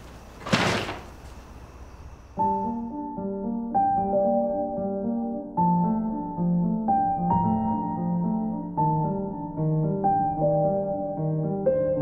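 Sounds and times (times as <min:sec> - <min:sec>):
paper bag thud on counter: 0:00.0 - 0:01.3.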